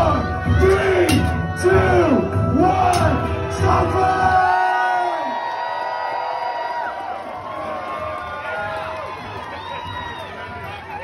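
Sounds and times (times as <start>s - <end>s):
music playing in a hall: 0.0s - 11.0s
crowd cheering and whooping: 3.9s - 11.0s.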